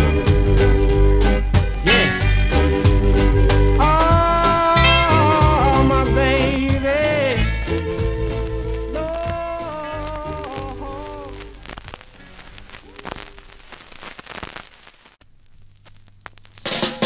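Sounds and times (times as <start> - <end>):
ska band music: 0.0 - 13.0, 16.6 - 17.0
soul band music: 0.0 - 13.2.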